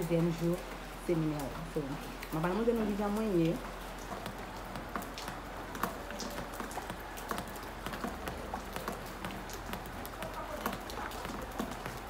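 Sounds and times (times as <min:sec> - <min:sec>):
woman speaking: 0:00.0 - 0:03.6.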